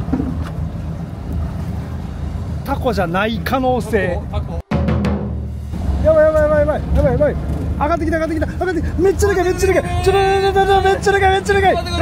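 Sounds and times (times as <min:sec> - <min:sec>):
boat engine humming: 0:00.0 - 0:04.6, 0:05.3 - 0:12.0.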